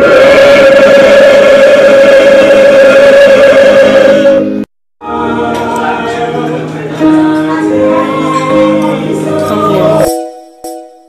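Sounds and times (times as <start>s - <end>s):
group singing long note: 0.0s - 10.1s.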